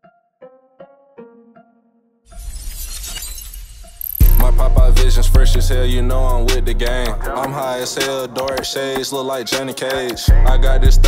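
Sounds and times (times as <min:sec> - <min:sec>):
glass shattering crash: 0:02.3 - 0:04.6.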